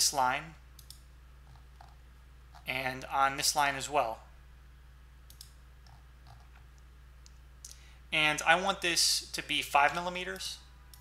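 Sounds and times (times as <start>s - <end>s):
low steady hum: 0.0s - 11.0s
computer mouse clicks: 0.8s - 2.7s, 5.3s - 7.8s, 9.9s - 11.0s.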